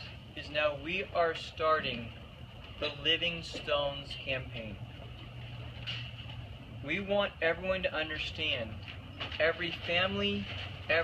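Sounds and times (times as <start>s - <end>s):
low background hum: 0.0s - 11.0s
man talking: 0.3s - 2.2s, 2.8s - 4.8s, 6.8s - 8.8s.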